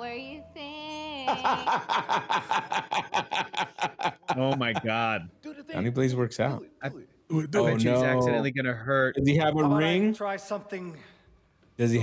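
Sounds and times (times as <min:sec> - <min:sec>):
man laughing hard: 0:01.3 - 0:05.1.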